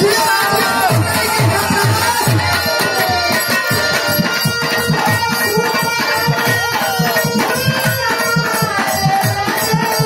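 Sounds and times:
live band music: 0:00.0 - 0:10.0
quick drum rhythm: 0:00.0 - 0:10.0.

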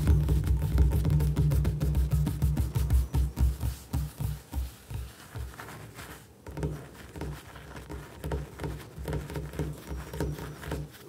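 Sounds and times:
fingers tapping on countertop: 0:00.0 - 0:05.6, 0:06.4 - 0:11.0.

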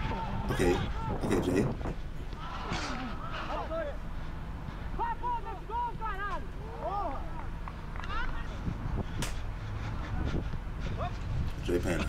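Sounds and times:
wind rumble on microphone: 0:00.0 - 0:03.4, 0:07.7 - 0:12.0.

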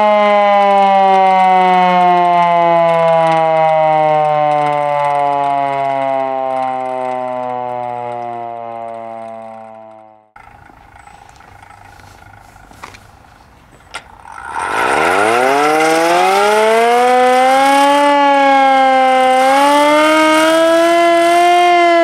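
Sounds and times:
siren winding down: 0:00.0 - 0:12.8, 0:14.0 - 0:22.0.

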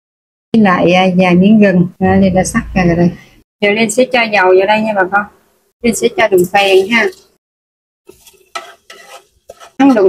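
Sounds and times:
metal spoon scraping a metal pot: 0:08.1 - 0:10.0.

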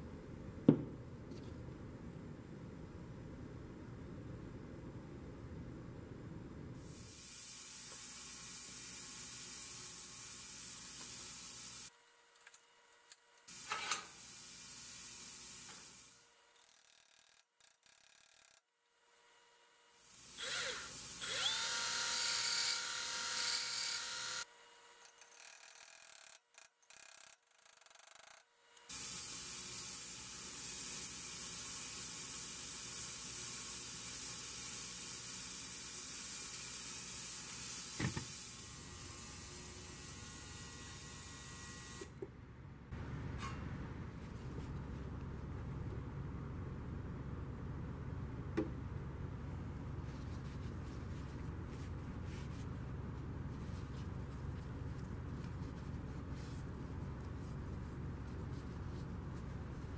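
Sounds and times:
electric power tool whining: 0:20.3 - 0:25.8.

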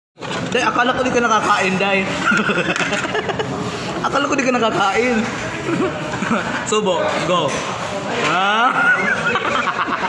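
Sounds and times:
people chuckling: 0:02.1 - 0:04.0, 0:05.4 - 0:06.7, 0:08.4 - 0:10.0
people talking: 0:04.0 - 0:10.0.

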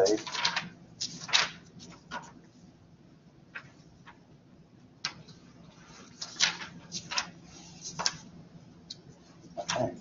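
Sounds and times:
book pages being flipped: 0:05.8 - 0:08.3.

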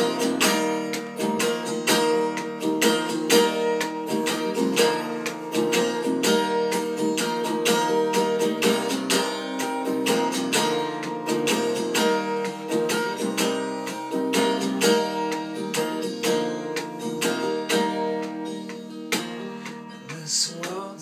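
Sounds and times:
guitar strumming chords: 0:00.0 - 0:21.0.

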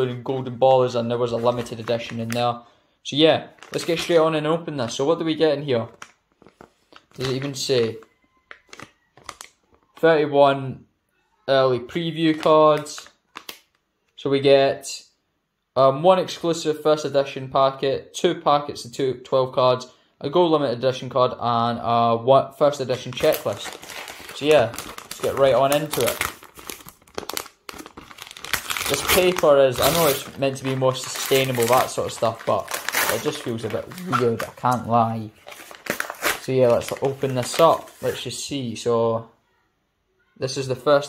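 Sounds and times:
card pack rustling and tapping: 0:05.8 - 0:07.6, 0:23.1 - 0:38.2.

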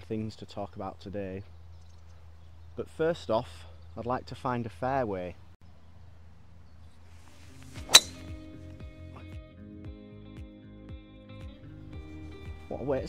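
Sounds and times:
background music with held notes: 0:07.5 - 0:13.0
golf club striking ball: 0:07.6 - 0:08.5.

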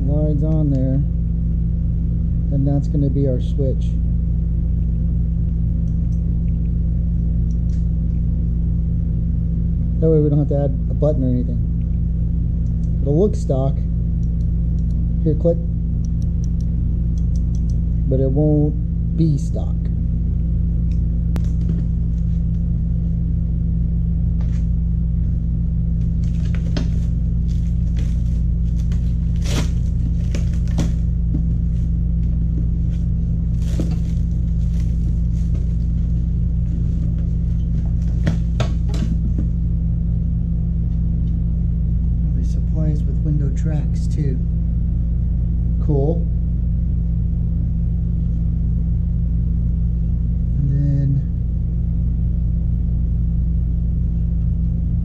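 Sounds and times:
low hum: 0:00.0 - 0:55.0
plastic shrink-wrap crinkling: 0:33.5 - 0:36.2.

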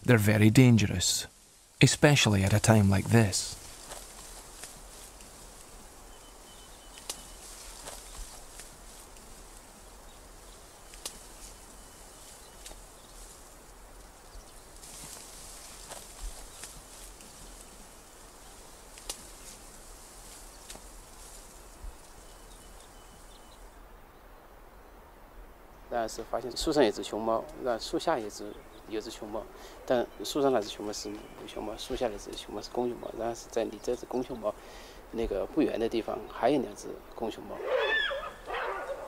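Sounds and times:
steady background hiss: 0:00.0 - 0:39.0
bamboo leaves rustling: 0:01.2 - 0:23.8, 0:26.2 - 0:34.6
bamboo snapping and cracking: 0:07.0 - 0:07.2, 0:10.9 - 0:11.3, 0:18.9 - 0:19.4.

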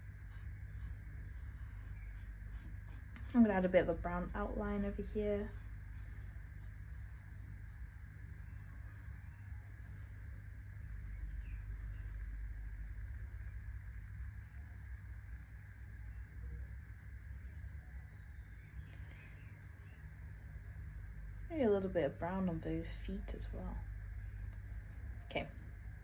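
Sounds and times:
faint background hum: 0:00.0 - 0:26.0.

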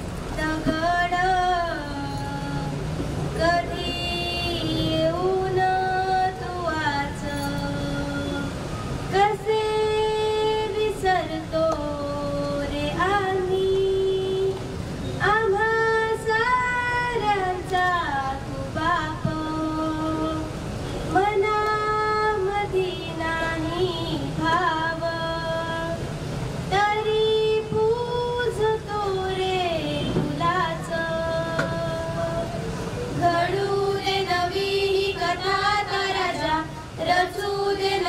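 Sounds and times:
girl singing into microphone: 0:00.3 - 0:38.0.

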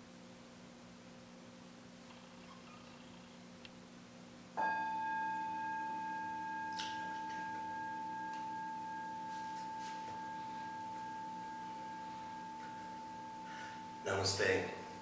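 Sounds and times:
singing bowl ringing: 0:04.6 - 0:15.0.

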